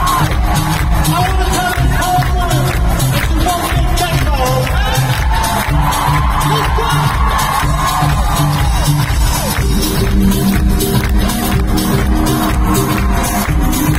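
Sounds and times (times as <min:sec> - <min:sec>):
electronic dance-pop music: 0:00.0 - 0:13.9.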